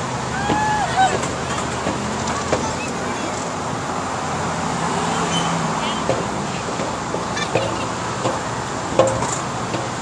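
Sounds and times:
faint voices: 0.3s - 3.8s.

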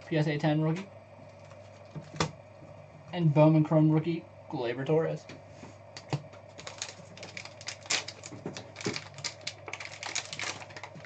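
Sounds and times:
plastic wrapper crinkling: 6.5s - 11.0s.

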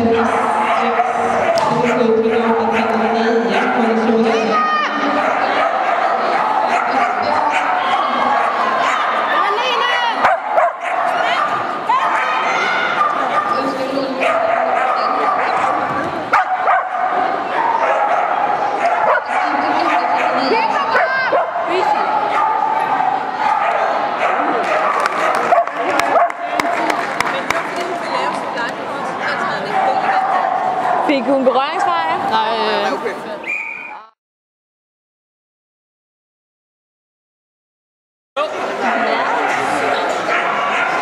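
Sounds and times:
dogs barking and yipping: 0.0s - 4.3s, 4.9s - 26.8s, 29.2s - 31.1s, 38.8s - 41.0s
murmur of people talking: 0.0s - 34.2s, 38.4s - 41.0s.

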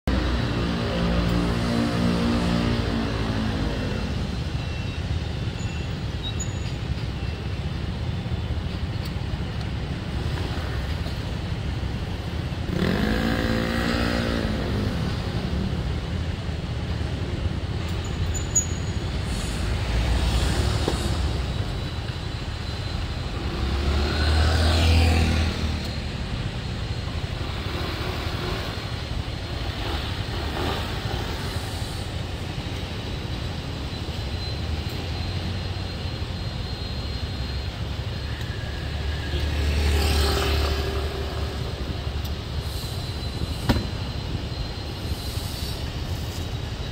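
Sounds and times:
rumble of street traffic: 0.0s - 46.9s
vehicles passing: 0.0s - 46.9s.

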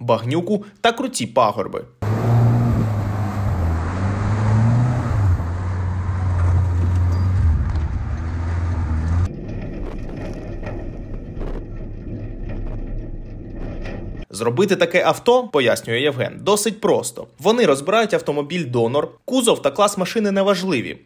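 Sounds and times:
buggy engine under load: 2.0s - 14.3s
wind and terrain noise: 2.0s - 14.3s
vehicle knocks and rattles: 6.2s - 14.3s.

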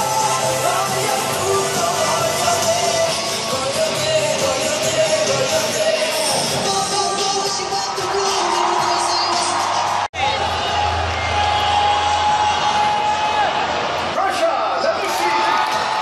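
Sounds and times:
music over loudspeakers: 0.0s - 11.8s
crowd cheering and shouting: 0.0s - 16.0s.

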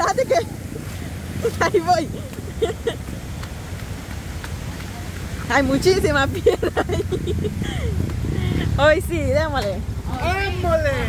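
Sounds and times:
steady low rumble: 0.0s - 11.0s
footsteps on wet cobblestones: 2.3s - 5.5s.

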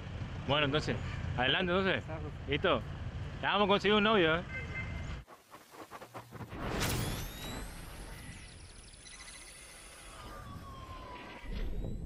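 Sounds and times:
electronic whooshes: 5.2s - 10.9s
gliding siren-like tones: 6.7s - 12.0s.

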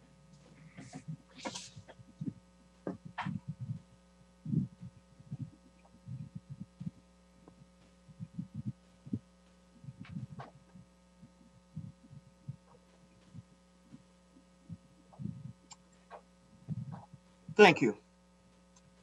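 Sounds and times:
steady electrical hum: 0.0s - 19.0s
soft low thumps: 0.5s - 17.6s.

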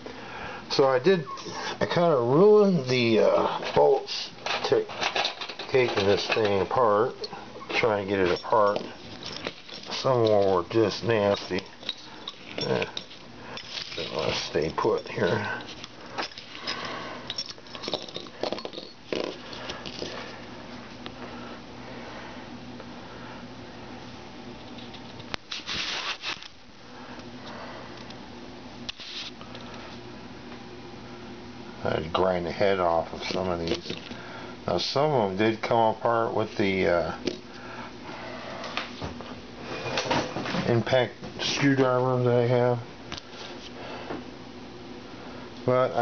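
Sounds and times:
faint steady hum: 0.0s - 46.0s
handling rustling: 7.8s - 20.4s.

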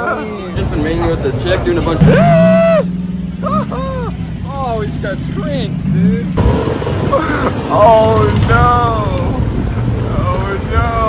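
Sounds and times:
vehicle engine hum: 0.0s - 11.0s
man laughing: 3.4s - 4.2s, 7.1s - 7.8s.

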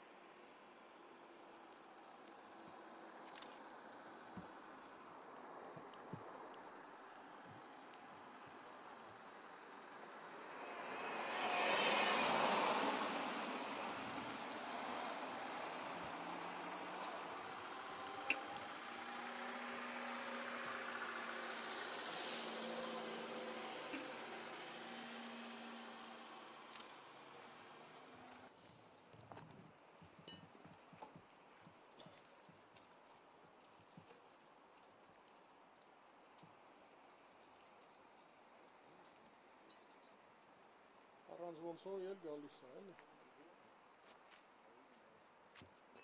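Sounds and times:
vehicle passing: 7.6s - 28.5s.

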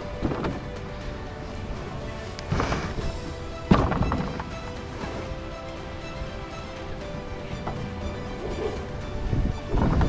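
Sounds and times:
background music: 0.0s - 10.0s
canoe hull knocking: 2.5s - 5.2s.

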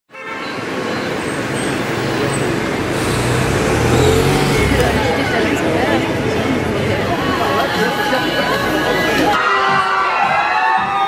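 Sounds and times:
road traffic noise: 0.1s - 9.4s
crowd chatter: 1.0s - 11.0s
car engine rumble passing: 1.1s - 8.8s.

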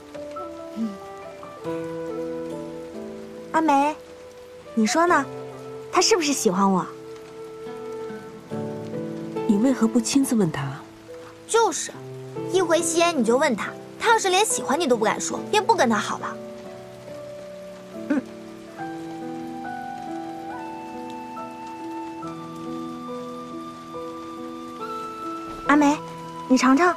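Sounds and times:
soft sustained chord music: 0.0s - 14.0s, 14.6s - 26.9s
rain patter: 0.0s - 26.9s.

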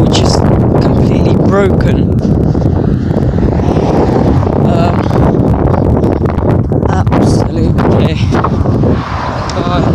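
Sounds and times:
road traffic passing: 0.0s - 9.9s
wind buffeting microphone: 0.0s - 9.9s.

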